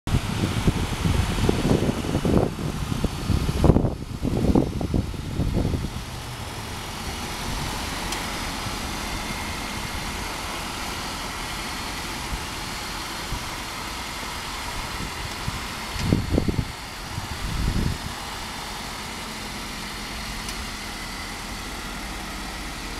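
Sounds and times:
low rumbling on microphone: 0:00.1 - 0:12.6, 0:14.7 - 0:18.2
car engine idling: 0:00.1 - 0:22.9.

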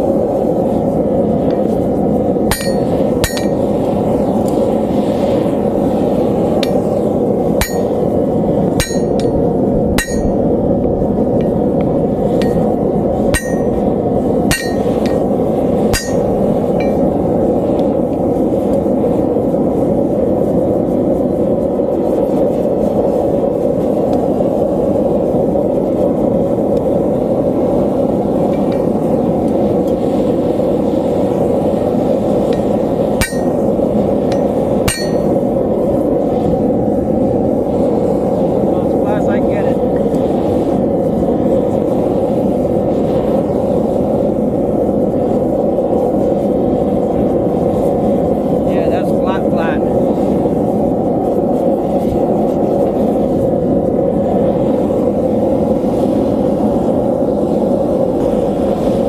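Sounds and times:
gas forge burner rushing: 0:00.0 - 0:59.0
hammer blows on metal: 0:02.4 - 0:03.8, 0:06.5 - 0:10.5, 0:12.3 - 0:17.0, 0:32.4 - 0:35.5.

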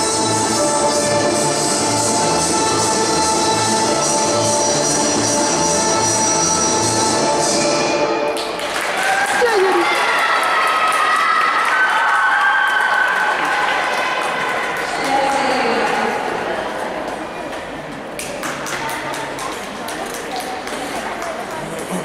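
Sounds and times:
scattered applause: 0:08.3 - 0:22.0.

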